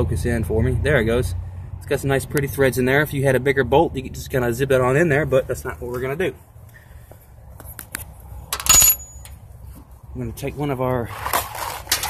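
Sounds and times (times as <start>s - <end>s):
metal object clinking on hard surface: 8.6s - 9.4s.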